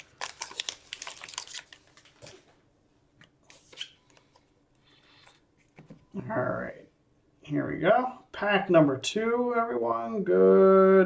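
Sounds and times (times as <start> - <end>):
cards being handled: 0.0 - 2.5
foil wrapper crinkling and tearing: 0.0 - 2.5.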